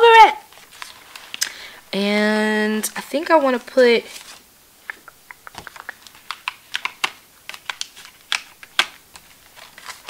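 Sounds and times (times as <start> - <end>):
fingernails clicking on pages: 4.9 - 10.0
paper and plastic clicking on rings: 4.9 - 10.0.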